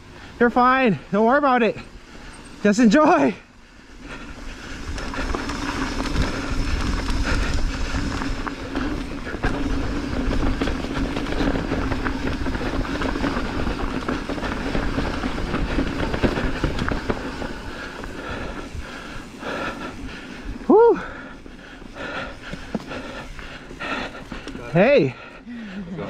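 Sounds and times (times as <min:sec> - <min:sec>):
bike tyres rumbling on dirt: 0:00.0 - 0:25.4
bike rattling and clicking: 0:00.1 - 0:25.5.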